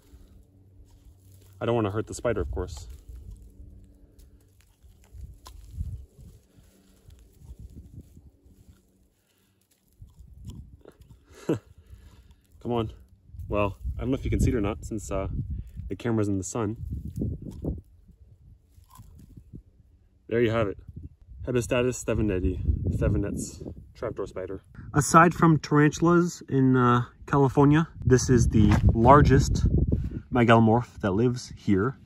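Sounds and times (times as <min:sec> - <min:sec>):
hands rubbing dry soil: 0:00.0 - 0:10.4
low rumble: 0:00.0 - 0:26.0, 0:27.1 - 0:32.0
dry soil crackling and crumbling: 0:00.0 - 0:26.7, 0:27.4 - 0:31.9.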